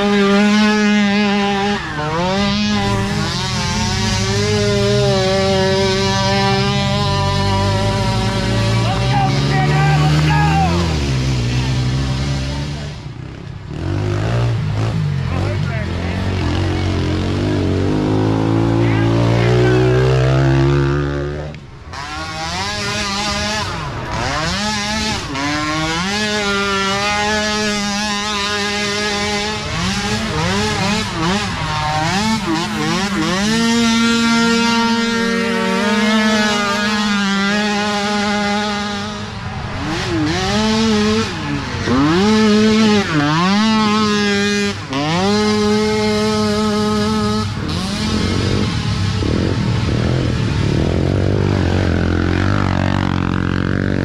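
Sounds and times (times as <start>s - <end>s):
small quad engines revving: 0.0s - 54.0s.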